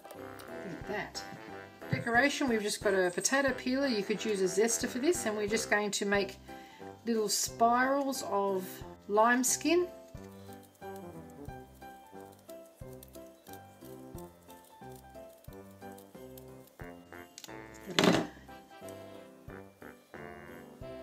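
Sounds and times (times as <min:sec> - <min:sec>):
light instrumental music: 0:00.0 - 0:21.0.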